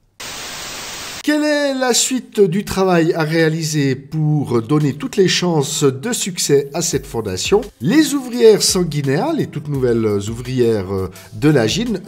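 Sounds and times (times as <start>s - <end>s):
television static hiss: 0.0s - 1.2s
man talking: 1.2s - 12.0s.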